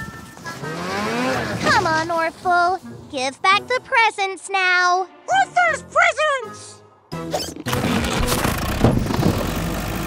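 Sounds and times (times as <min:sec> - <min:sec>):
character voice: 0:01.5 - 0:06.9.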